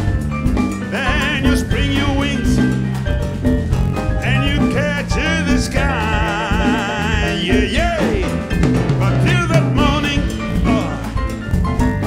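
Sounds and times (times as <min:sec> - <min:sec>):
live jazz band playing: 0:00.0 - 0:12.0.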